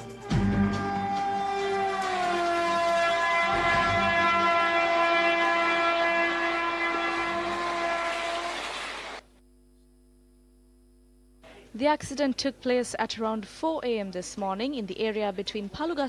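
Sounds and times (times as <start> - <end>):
train horn blast: 0.1 - 9.2
train running: 0.2 - 9.2.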